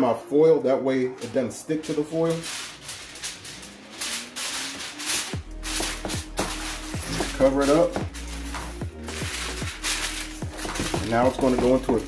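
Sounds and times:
aluminium foil crinkling: 0:01.2 - 0:12.0
background music with thudding beat: 0:01.9 - 0:12.0.

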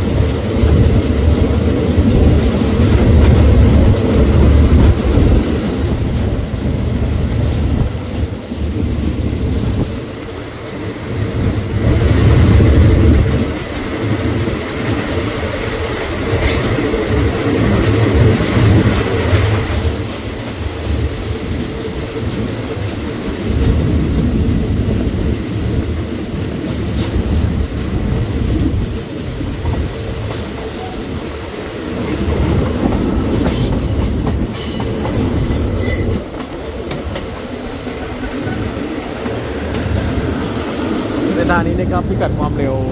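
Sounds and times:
train rumbling on rails: 0:00.0 - 0:42.9.

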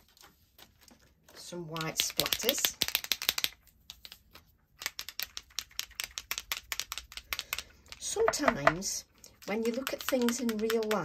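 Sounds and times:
paint pen clicking and tapping: 0:01.7 - 0:11.0.

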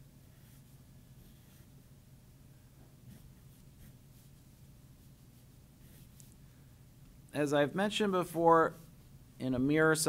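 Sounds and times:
low steady hum: 0:00.0 - 0:10.0
pencil scratching on paper: 0:00.2 - 0:01.8, 0:03.0 - 0:06.3.

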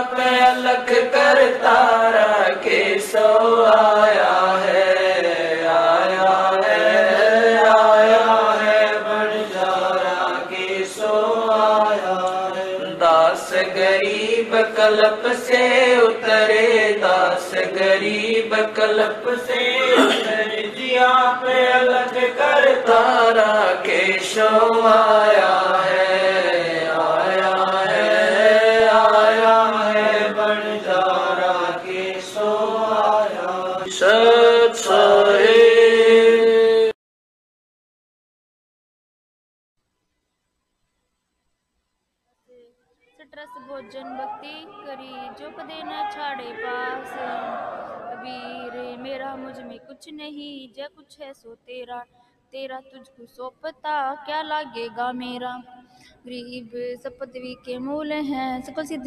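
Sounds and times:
person chanting verses: 0:00.0 - 0:37.0, 0:43.2 - 0:50.2.

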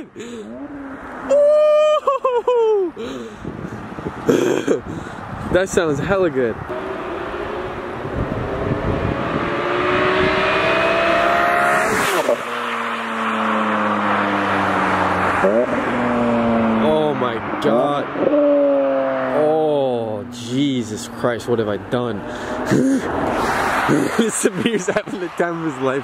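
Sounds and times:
car engine revving in flyby: 0:06.7 - 0:20.2, 0:22.2 - 0:24.3.

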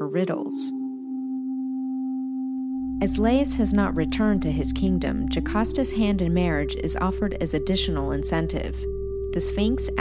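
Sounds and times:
electronic drone note: 0:00.0 - 0:10.0.

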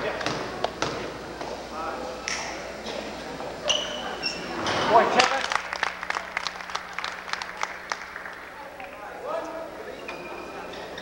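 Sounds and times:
spectators applauding: 0:05.1 - 0:09.0.

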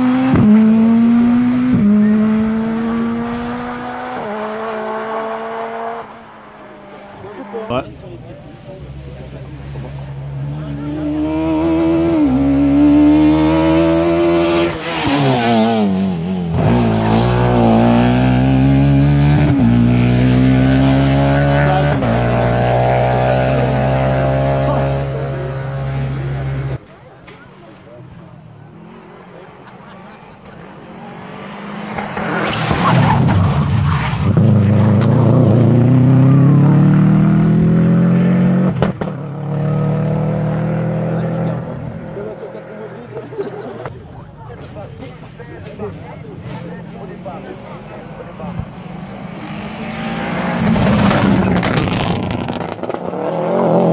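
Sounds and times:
rally car accelerating: 0:00.0 - 0:26.8, 0:28.1 - 0:43.9, 0:45.7 - 0:53.9
rally car engine at full throttle: 0:00.0 - 0:53.9.

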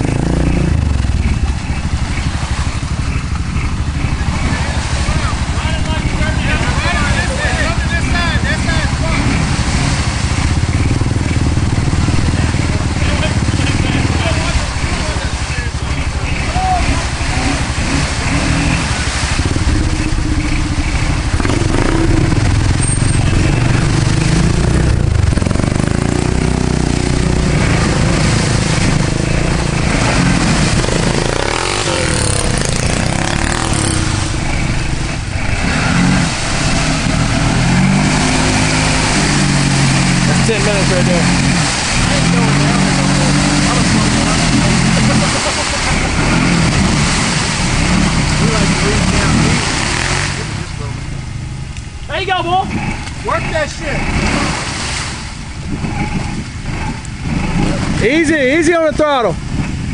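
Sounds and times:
atv engine revving: 0:00.0 - 0:59.9
churning water and mud: 0:00.0 - 0:59.9.

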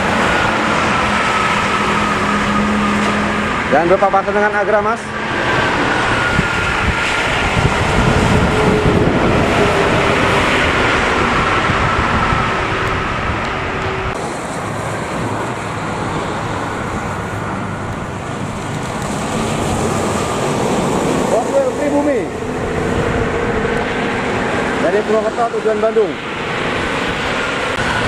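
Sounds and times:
coach passing with whine: 0:00.0 - 0:28.0
highway traffic: 0:00.0 - 0:28.0
wind on microphone: 0:05.1 - 0:24.8.

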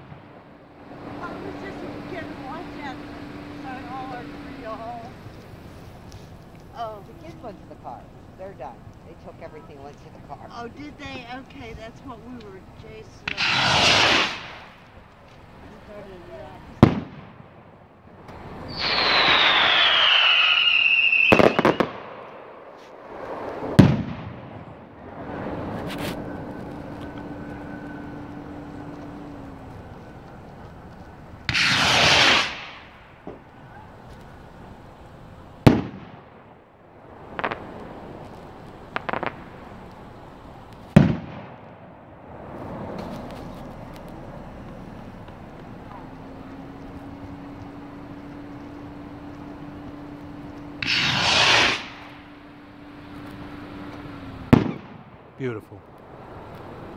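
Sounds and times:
firework rocket whooshing: 0:00.0 - 0:07.4, 0:12.9 - 0:30.0, 0:31.4 - 0:44.3, 0:50.8 - 0:55.5
firework bangs: 0:00.0 - 0:46.5, 0:49.7 - 0:56.9
firework rocket whistling: 0:12.8 - 0:17.5, 0:18.2 - 0:43.8, 0:49.7 - 0:55.1.

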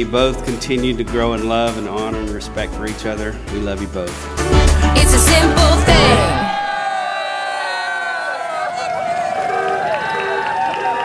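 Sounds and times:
music: 0:00.0 - 0:06.6
crowd cheering and shouting: 0:05.2 - 0:11.0.

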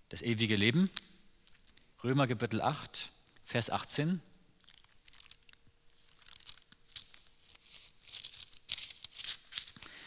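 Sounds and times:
paper pages rustling: 0:04.6 - 0:10.0.

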